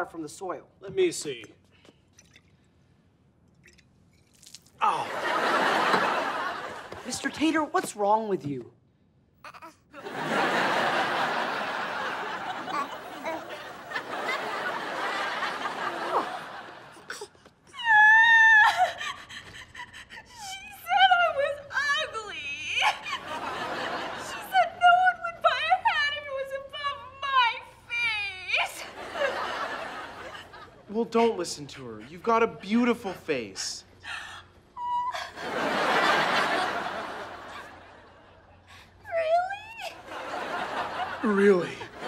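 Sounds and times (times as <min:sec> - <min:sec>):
studio audience laughter: 0:05.0 - 0:07.0, 0:10.0 - 0:17.1, 0:23.2 - 0:24.5, 0:35.4 - 0:38.4, 0:40.0 - 0:42.0
girl crying loudly: 0:17.8 - 0:23.2, 0:39.1 - 0:40.0.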